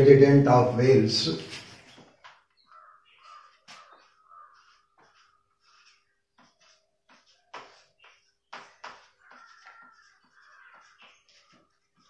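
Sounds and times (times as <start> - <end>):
marker squeaking on whiteboard: 1.4 - 12.0.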